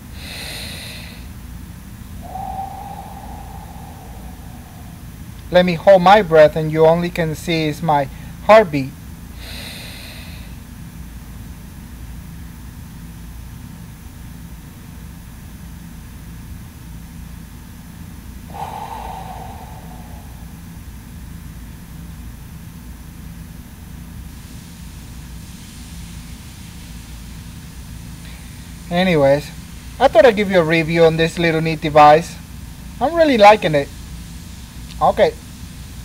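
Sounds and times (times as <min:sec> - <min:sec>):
man exhaling: 0:00.0 - 0:01.3, 0:02.2 - 0:05.3, 0:09.4 - 0:10.5, 0:18.4 - 0:20.9
low background hum: 0:00.0 - 0:12.4, 0:18.4 - 0:21.2.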